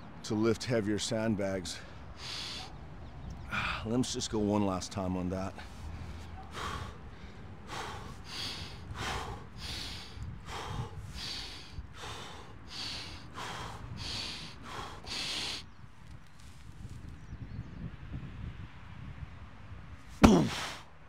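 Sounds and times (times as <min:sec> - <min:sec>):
man breathing forcefully: 0:02.0 - 0:02.7, 0:05.6 - 0:15.7, 0:20.2 - 0:20.9.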